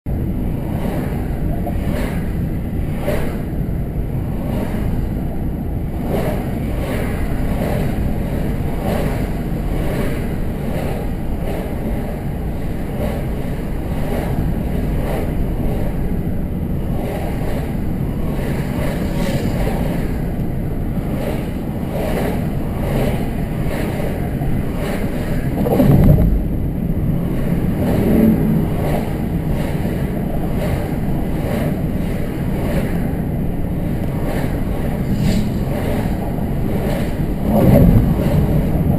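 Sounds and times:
car road and engine noise: 0.1s - 38.9s.

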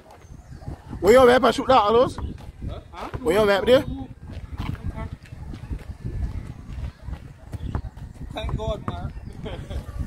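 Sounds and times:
distant voices of players: 0.0s - 10.0s.

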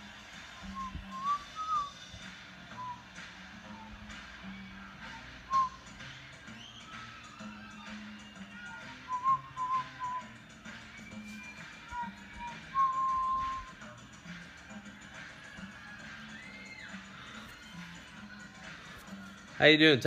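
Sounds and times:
quiet background music: 0.0s - 20.0s
man whistling: 0.1s - 14.0s, 16.2s - 18.4s.

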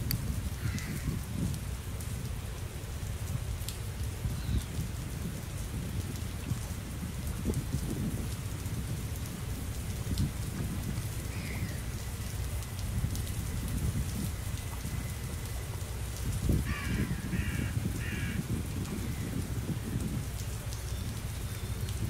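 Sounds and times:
waves lapping against stone wall: 0.0s - 22.0s
wind rumbling on microphone: 0.0s - 22.0s.

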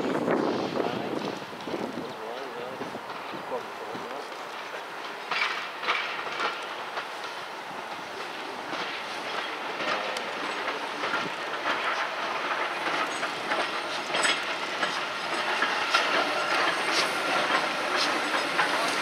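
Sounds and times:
steam hissing: 0.0s - 19.0s
train wheels clicking over rail joints: 0.0s - 19.0s.

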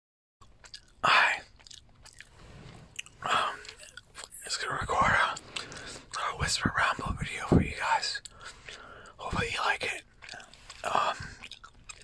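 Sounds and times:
gum chewing clicks: 0.4s - 7.1s, 8.0s - 12.0s
soft whispering: 1.0s - 1.6s, 3.0s - 11.5s.

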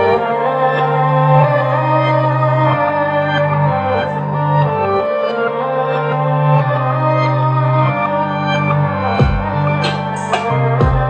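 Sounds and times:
instrumental hip-hop beat: 0.0s - 11.0s.

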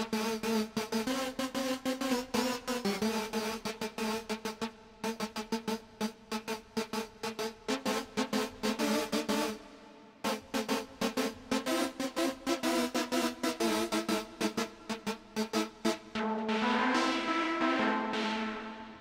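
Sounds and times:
pulsing synthesizer notes: 4.6s - 19.0s
held synthesizer chord: 16.2s - 19.0s.

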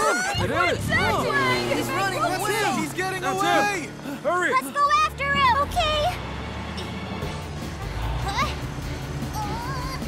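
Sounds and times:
cartoon voices shouting: 0.0s - 3.8s.

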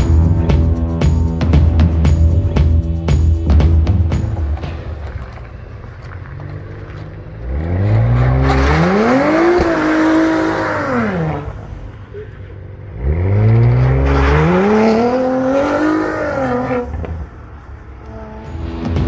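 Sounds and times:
car engine accelerating hard: 3.6s - 19.0s.

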